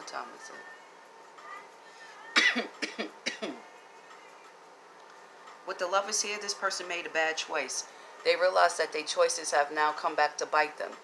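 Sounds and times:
woman coughing: 0:02.4 - 0:03.6.

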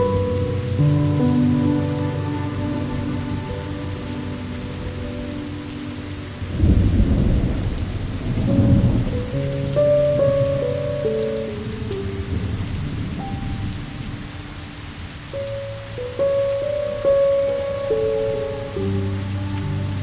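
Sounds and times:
soft sustained music notes: 0:00.0 - 0:20.0
steady rain: 0:00.0 - 0:20.0
thunder rumbling: 0:00.0 - 0:20.0.

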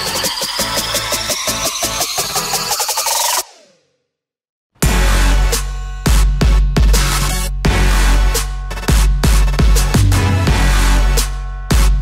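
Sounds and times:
electronic music with fast beat: 0:00.0 - 0:03.6, 0:04.8 - 0:12.0.

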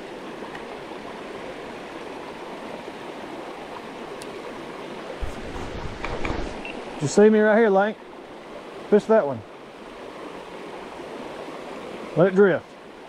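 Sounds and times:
creek water over stones: 0:00.0 - 0:13.0
low rumbling: 0:05.2 - 0:07.2.

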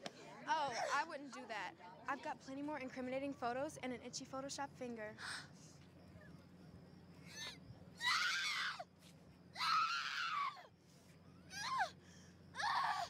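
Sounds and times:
young women screaming: 0:07.3 - 0:08.9, 0:09.5 - 0:10.7, 0:11.4 - 0:12.0, 0:12.6 - 0:13.0.

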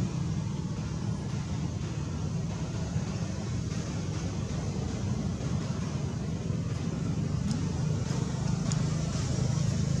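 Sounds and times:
low rumble of road traffic: 0:00.0 - 0:10.0.

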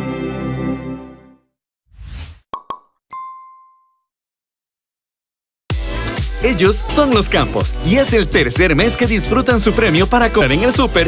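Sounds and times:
bright chime ding: 0:03.1 - 0:04.1.

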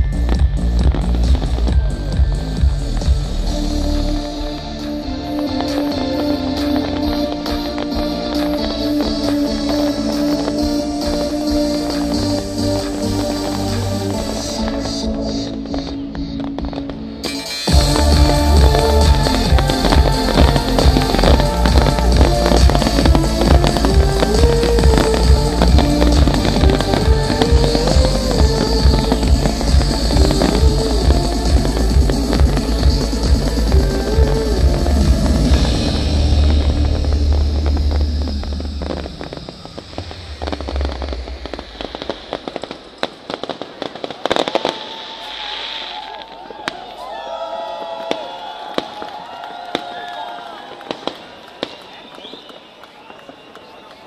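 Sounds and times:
music with heavy beat: 0:00.0 - 0:42.8
firework bangs and crackles: 0:00.0 - 0:54.0.

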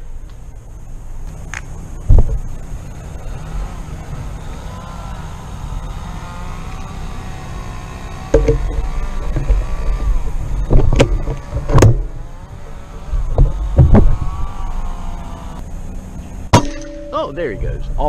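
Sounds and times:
wind rumble on microphone: 0:00.0 - 0:03.8, 0:08.3 - 0:14.8
distant motor droning: 0:00.0 - 0:18.0
sharp clicks or knocks: 0:10.7 - 0:12.1.

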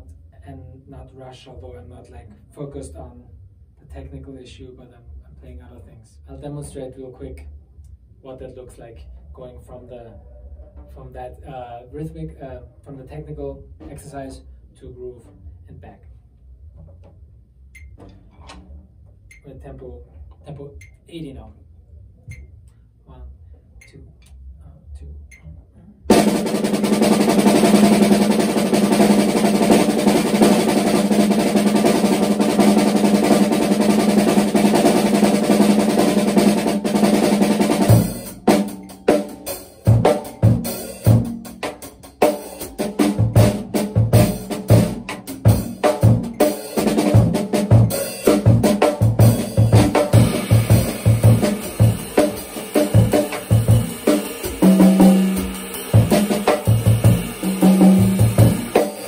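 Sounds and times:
drum kit groove: 0:26.1 - 0:59.0
rapid snare drum strokes: 0:26.1 - 0:59.0
bass drum hits: 0:42.6 - 0:58.9.

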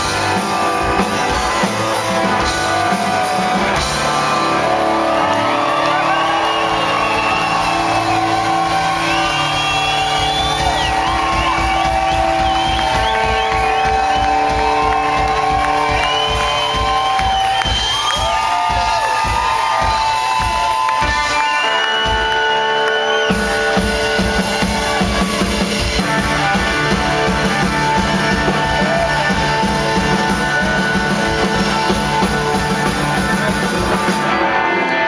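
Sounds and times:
crowd whooping and cheering: 0:00.0 - 0:35.0
live rock band playing: 0:00.0 - 0:35.0.

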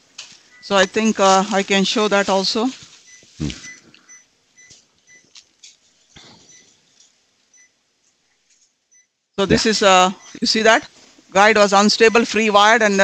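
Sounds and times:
faint electronic monitor beeps: 0:00.5 - 0:01.9, 0:03.0 - 0:05.3, 0:06.0 - 0:06.9, 0:07.5 - 0:07.8, 0:08.9 - 0:10.8, 0:11.8 - 0:12.8.

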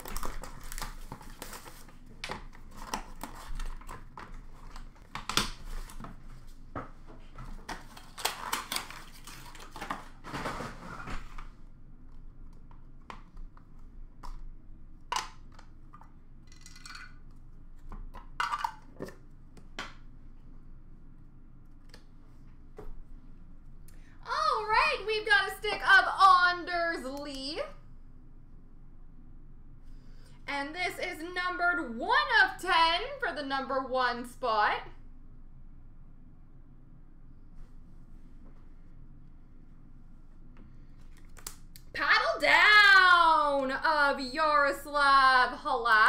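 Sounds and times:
cardboard packaging rustling: 0:00.0 - 0:06.6, 0:07.4 - 0:11.3.

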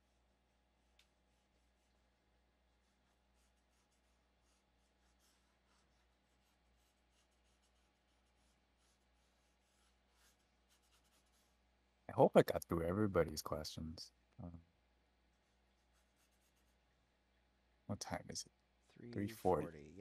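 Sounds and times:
pencil scratching on paper: 0:02.7 - 0:11.6, 0:15.4 - 0:16.8.

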